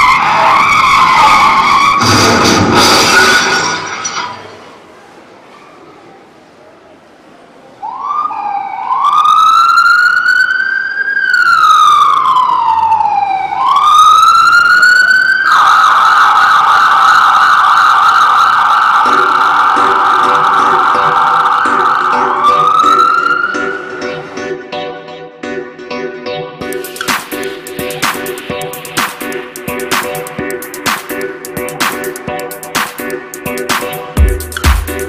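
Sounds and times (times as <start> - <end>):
emergency siren wailing: 0.0 - 2.3, 7.8 - 24.8, 26.6 - 33.0
music with a beat: 26.3 - 35.0.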